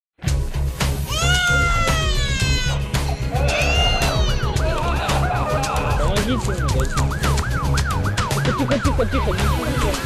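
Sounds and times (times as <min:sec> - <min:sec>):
dramatic music with heavy low beat: 0:00.2 - 0:10.0
siren-like wail: 0:06.0 - 0:09.9.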